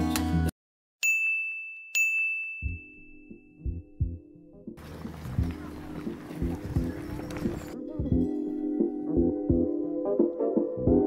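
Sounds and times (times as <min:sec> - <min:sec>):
bright bell-like dings: 0:01.0 - 0:04.2.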